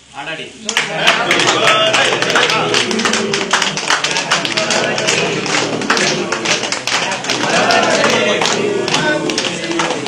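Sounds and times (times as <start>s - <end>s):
group clapping: 0.6s - 10.0s.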